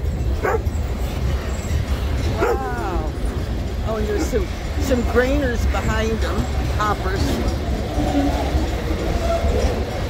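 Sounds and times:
freight train rumbling past: 0.0 - 10.0
dog barking and whining: 0.4 - 0.7, 2.4 - 2.7.

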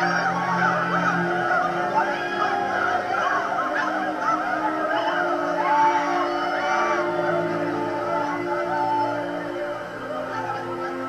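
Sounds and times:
low sustained music notes: 0.0 - 11.0
many voices crying out: 0.0 - 11.0.

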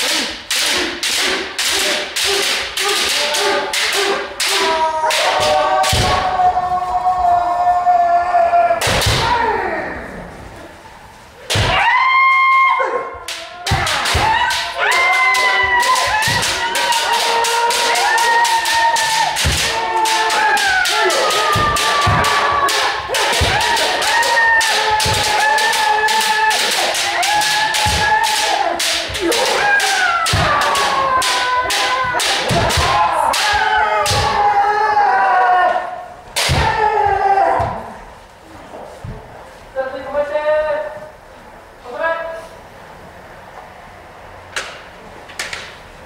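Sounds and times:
people shouting: 0.0 - 38.1
bamboo swords striking armour: 18.0 - 34.4.

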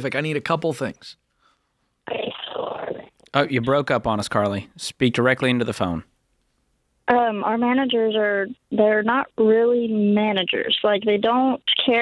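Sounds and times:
garbled voice on phone line: 2.1 - 3.8, 7.1 - 12.0.

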